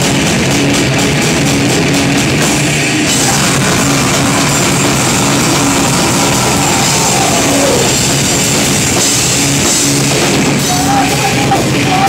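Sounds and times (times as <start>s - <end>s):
heavy rock band playing: 0.0s - 12.0s.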